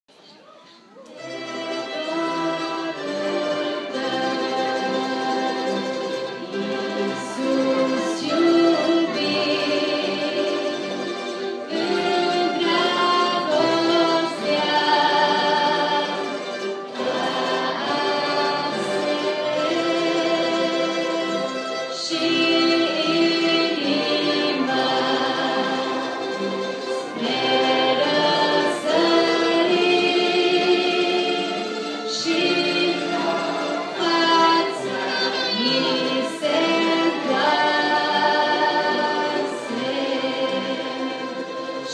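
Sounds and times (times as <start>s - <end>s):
choir singing: 1.0s - 41.9s
orchestra playing held notes: 1.0s - 41.9s.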